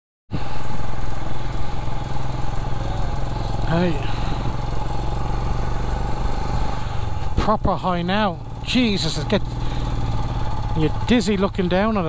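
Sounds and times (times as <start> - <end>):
motorcycle engine running: 0.3 - 12.0.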